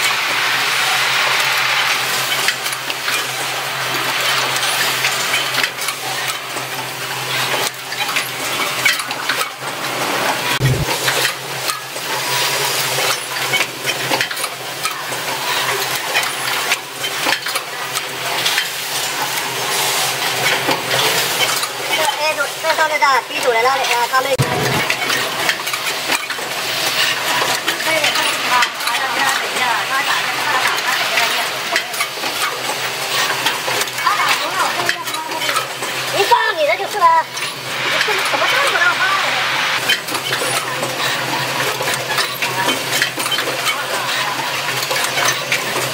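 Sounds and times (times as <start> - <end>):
machine hum and hiss: 0.0 - 45.9
machine metallic clicks and clatter: 1.3 - 9.8, 10.6 - 22.2, 23.8 - 38.7, 39.8 - 45.9
machine humming: 9.6 - 11.6
mechanical clicks and clatter: 39.8 - 45.9.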